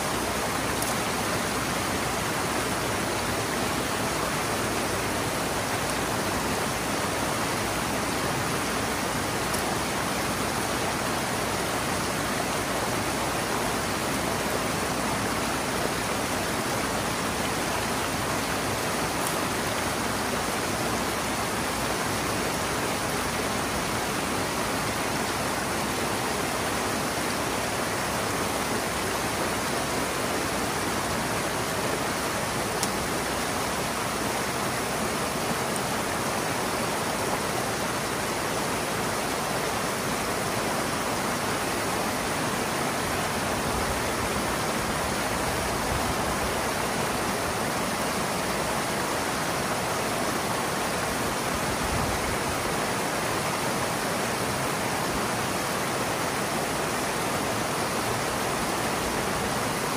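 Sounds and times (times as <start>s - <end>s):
water rushing through a gap: 0.0s - 59.9s.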